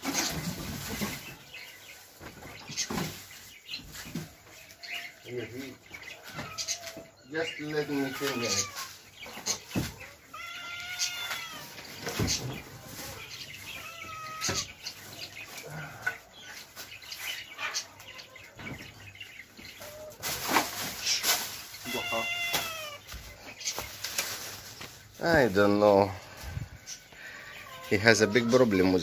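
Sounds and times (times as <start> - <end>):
cat meowing: 7.8 - 9.0, 10.3 - 11.8, 13.1 - 14.7, 21.8 - 23.0
knocks and bedding rustling: 11.0 - 17.5.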